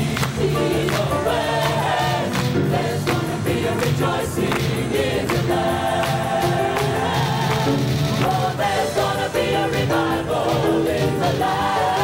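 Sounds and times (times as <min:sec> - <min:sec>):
choir singing gospel: 0:00.0 - 0:12.0
instrumental accompaniment: 0:00.0 - 0:12.0.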